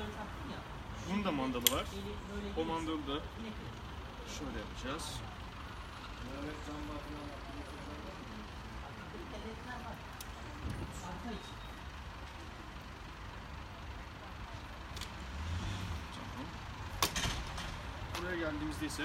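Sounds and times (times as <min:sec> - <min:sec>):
outdoor traffic noise: 0:00.0 - 0:19.0.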